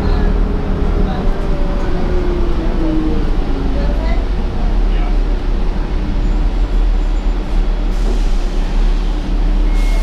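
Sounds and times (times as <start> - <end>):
bus engine rumble: 0.0 - 10.0
road and cabin noise: 0.0 - 10.0.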